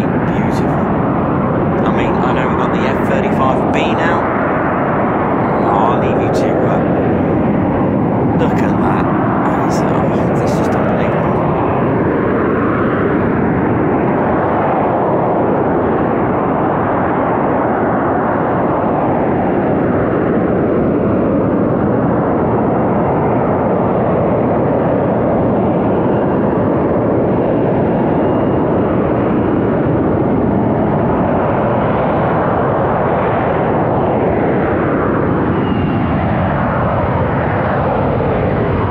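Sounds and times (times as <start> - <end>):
loud jet roar: 0.0 - 38.9.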